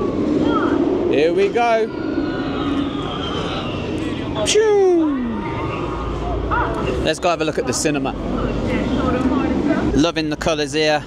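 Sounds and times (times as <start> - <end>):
thrill ride rumble: 0.0 - 11.0.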